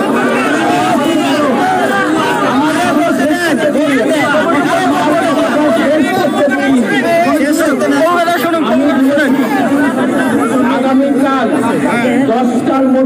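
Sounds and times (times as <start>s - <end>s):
man speaking into microphone: 0.0s - 13.0s
voices chattering: 0.0s - 13.0s.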